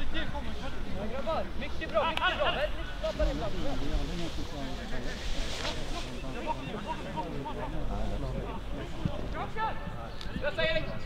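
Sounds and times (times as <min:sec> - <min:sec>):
voices calling and talking: 0:00.0 - 0:11.0.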